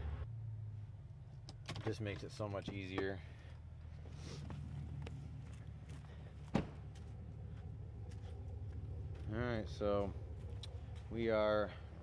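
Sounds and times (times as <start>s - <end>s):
truck engine idling: 2.7s - 12.0s
footsteps on dirt: 3.0s - 11.2s.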